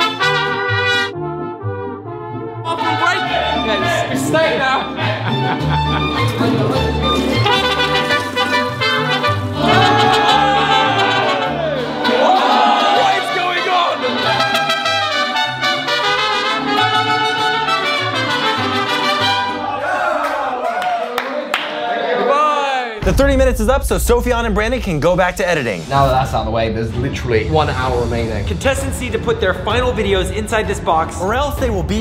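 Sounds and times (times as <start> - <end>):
trumpets: 0.0 - 4.4, 7.2 - 19.8.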